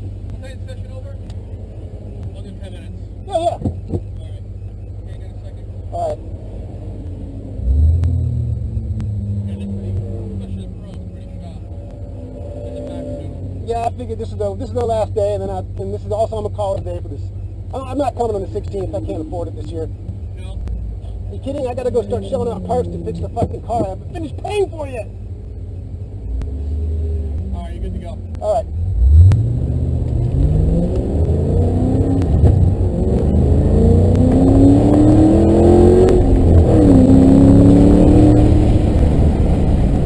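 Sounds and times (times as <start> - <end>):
car engine idling: 0.0 - 40.0.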